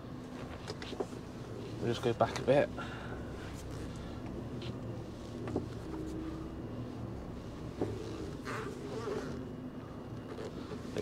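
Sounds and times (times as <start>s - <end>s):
truck diesel engine low drone: 0.0s - 11.0s.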